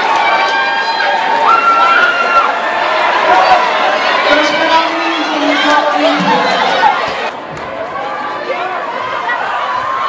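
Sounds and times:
long high-pitched yells: 0:00.0 - 0:07.0
crowd noise in a gymnasium: 0:00.0 - 0:10.0.

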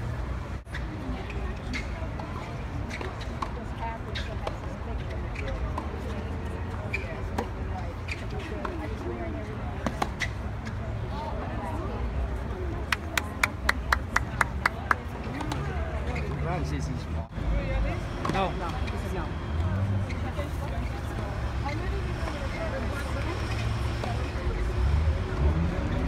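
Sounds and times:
murmur of spectators chatter: 0:00.0 - 0:26.0
tennis balls struck by racquets: 0:09.8 - 0:10.4, 0:12.9 - 0:16.4, 0:18.2 - 0:19.1.

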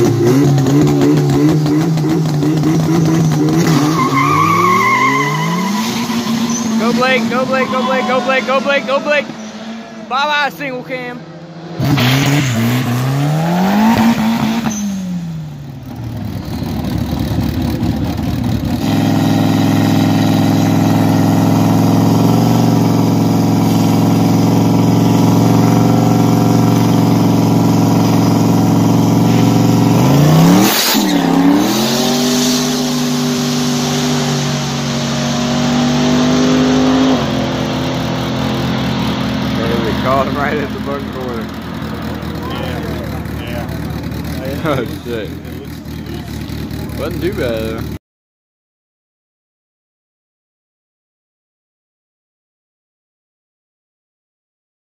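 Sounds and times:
car engine revving: 0:00.0 - 0:48.0.

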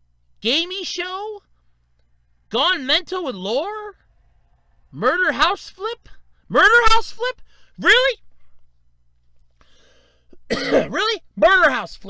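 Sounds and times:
man speaking: 0:00.4 - 0:01.5, 0:02.5 - 0:04.0, 0:04.9 - 0:08.3, 0:10.7 - 0:12.0
man coughing: 0:10.3 - 0:11.0.

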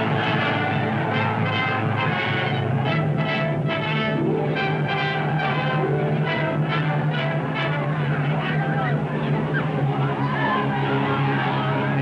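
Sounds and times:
brass-led orchestral music: 0:00.0 - 0:12.0.

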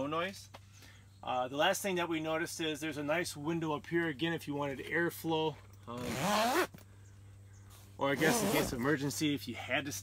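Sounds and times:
zipper pulled open: 0:06.0 - 0:06.8, 0:08.2 - 0:08.8.

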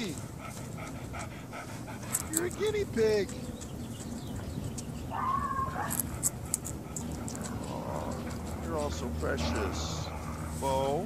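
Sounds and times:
dog panting: 0:00.0 - 0:05.1, 0:05.7 - 0:11.0.

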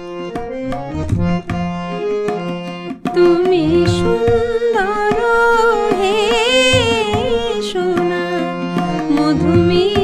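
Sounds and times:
held melody notes: 0:00.0 - 0:10.0.

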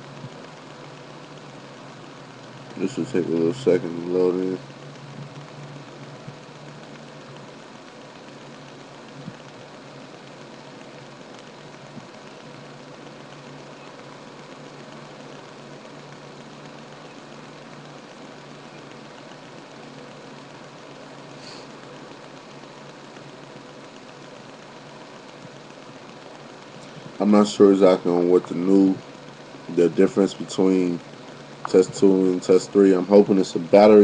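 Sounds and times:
faint low hum: 0:00.0 - 0:34.0
steady background hiss: 0:00.0 - 0:34.0.

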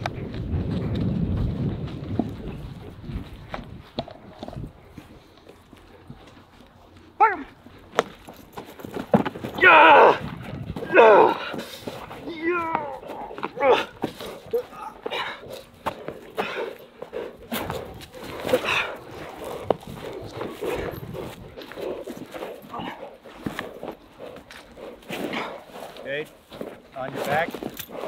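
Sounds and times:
scuffling and knocks: 0:07.6 - 0:09.7.

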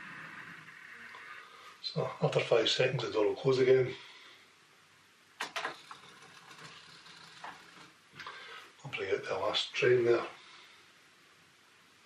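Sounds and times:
roller door motor whirring: 0:00.0 - 0:01.4, 0:05.4 - 0:08.0
sharp mechanical clicks: 0:05.4 - 0:07.9.

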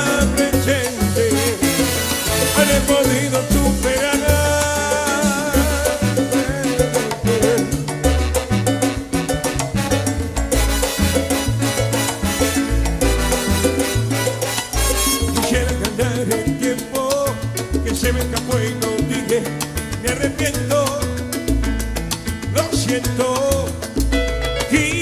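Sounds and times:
salsa band playing: 0:00.0 - 0:25.0
steady percussion: 0:00.0 - 0:25.0
syncopated bass line: 0:00.0 - 0:25.0.

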